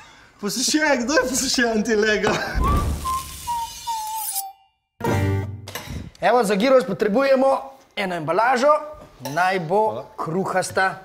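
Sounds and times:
whistle-like tone sliding downward: 2.6 - 4.9
bright hiss: 2.7 - 4.1.

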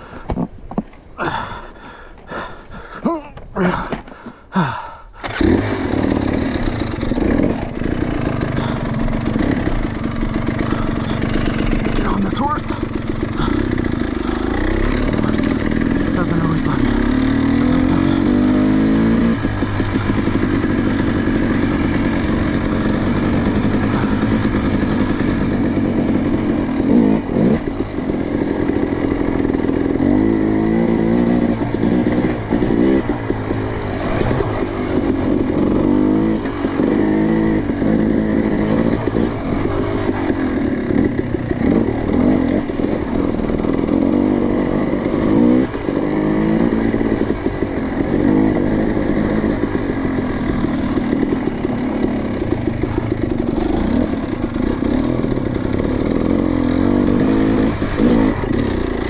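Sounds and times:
dirt bike engine revving: 5.2 - 59.0.

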